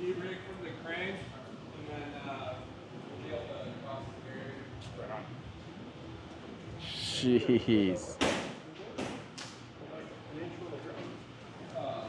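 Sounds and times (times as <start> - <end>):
short voice sound: 6.8 - 7.4
loud sharp knocks in a hall: 8.2 - 9.4.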